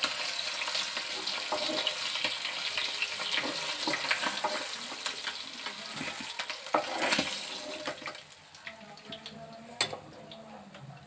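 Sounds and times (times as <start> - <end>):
oil sizzling in a frying pan: 0.0 - 10.4
metal spatula scraping a pan: 0.3 - 8.2.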